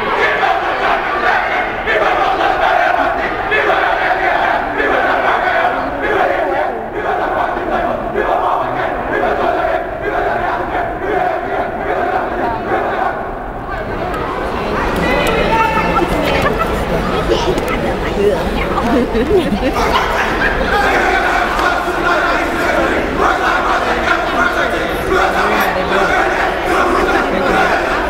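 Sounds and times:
group chanting in unison: 0.0s - 13.5s, 18.2s - 28.0s
crowd noise: 0.0s - 28.0s.

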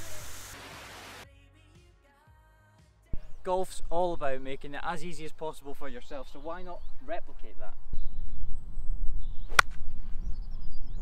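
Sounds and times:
golf club striking ball: 9.5s - 9.9s.

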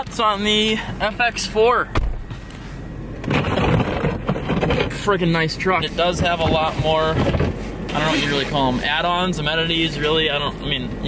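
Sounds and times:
low thump: 1.9s - 2.4s.

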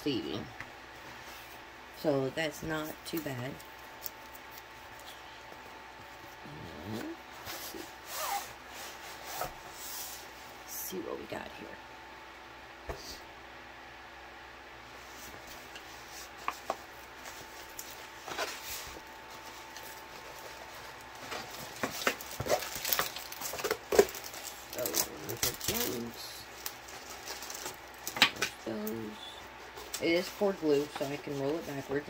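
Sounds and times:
plastic film rustling and crinkling: 15.1s - 32.0s.

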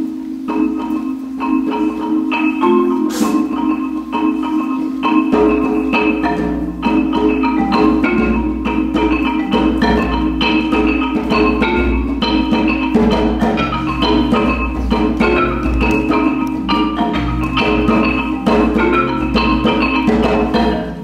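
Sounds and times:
marimba dance music: 0.0s - 21.0s.

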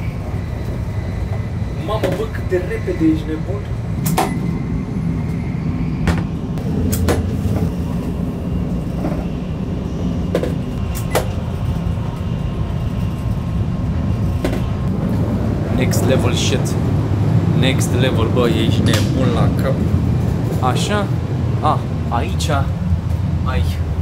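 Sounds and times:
train rumble from inside carriage: 0.0s - 24.0s.

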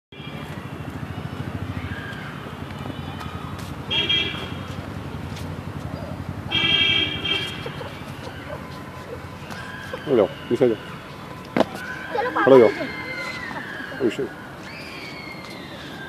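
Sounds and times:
street traffic: 0.1s - 16.0s
vehicle horn honking: 3.9s - 4.7s, 6.5s - 7.9s.

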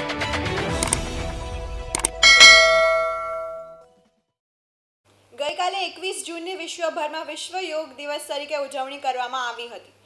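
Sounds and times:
sharp clicks: 2.0s - 2.2s
bright chime: 2.2s - 3.8s.

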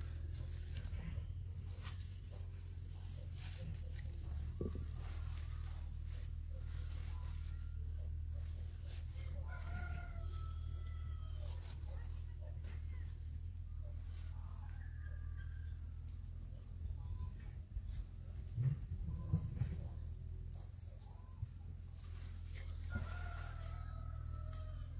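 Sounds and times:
leafy greens rustling: 0.0s - 20.0s, 21.6s - 24.9s
faint rooster crowing: 0.0s - 24.9s
steady low hum: 0.0s - 24.9s.

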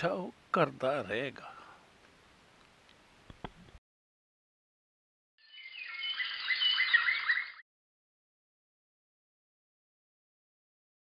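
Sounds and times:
birds chirping: 5.4s - 7.6s.

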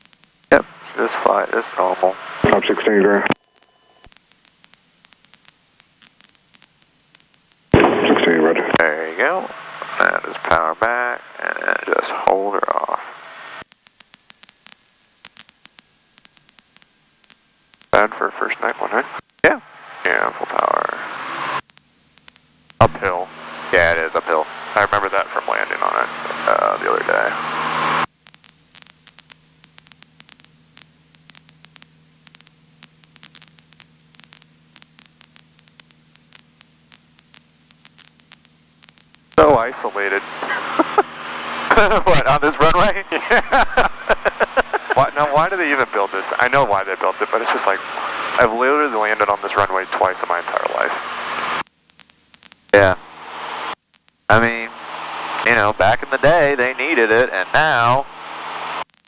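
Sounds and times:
low steady hum: 0.1s - 58.9s
voices over radio: 0.5s - 3.4s, 7.8s - 13.2s, 17.9s - 21.2s, 22.8s - 27.5s, 39.4s - 51.1s, 52.8s - 53.0s, 54.3s - 54.7s, 55.4s - 58.1s
radio static: 0.5s - 59.0s
faint clicks: 21.6s - 22.8s, 28.1s - 39.4s.

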